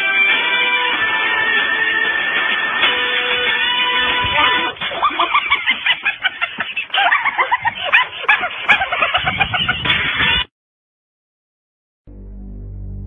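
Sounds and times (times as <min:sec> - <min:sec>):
guitar music: 0:00.0 - 0:05.0, 0:12.1 - 0:13.0.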